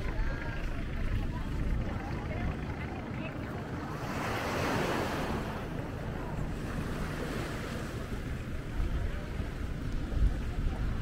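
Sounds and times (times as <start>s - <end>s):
wind rumbling on microphone: 0.0s - 11.0s
small waves breaking on shore: 3.6s - 11.0s.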